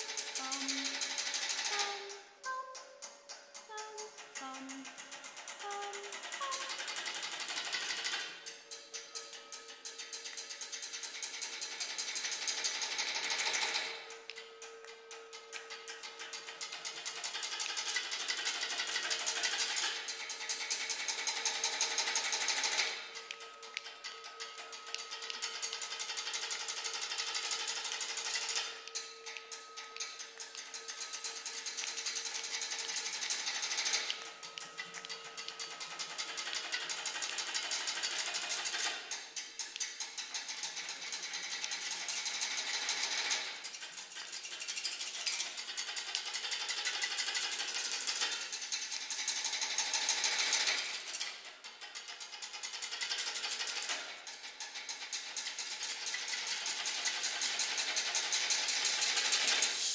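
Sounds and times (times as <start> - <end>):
steady held pitch: 0.0 - 7.3
dense rattling hiss: 29.2 - 59.9.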